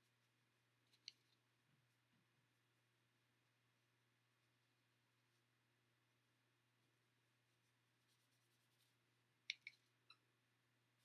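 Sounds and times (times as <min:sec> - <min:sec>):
paintbrush strokes on paper: 0:00.0 - 0:02.2, 0:03.8 - 0:10.2
small sharp clicks: 0:09.5 - 0:09.9.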